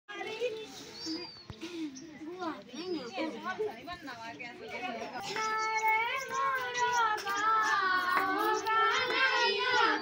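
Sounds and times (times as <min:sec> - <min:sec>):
women and girls chattering: 0:00.1 - 0:10.0.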